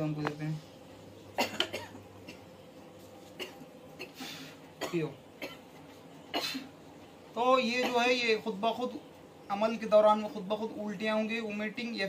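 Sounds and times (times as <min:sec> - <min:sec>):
person coughing: 0:01.4 - 0:02.5, 0:03.4 - 0:05.7, 0:06.3 - 0:06.7, 0:07.8 - 0:08.2.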